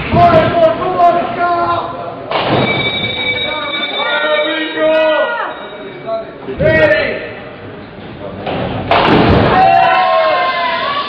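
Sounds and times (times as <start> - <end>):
ball crashing into pins: 8.5 - 9.6.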